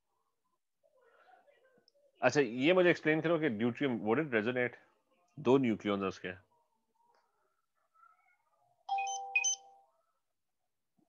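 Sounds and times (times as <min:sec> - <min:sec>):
electronic notification chime: 0:08.9 - 0:09.7.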